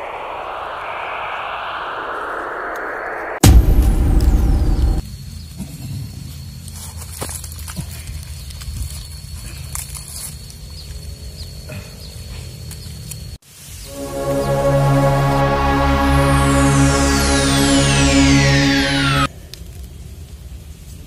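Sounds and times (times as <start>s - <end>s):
loud boom with falling whistle: 0.0s - 5.0s, 13.9s - 19.3s
steady low drone: 0.0s - 5.0s, 13.9s - 19.3s.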